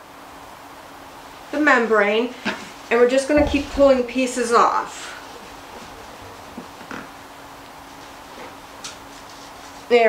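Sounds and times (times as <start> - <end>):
low steady hum: 2.9 - 8.3.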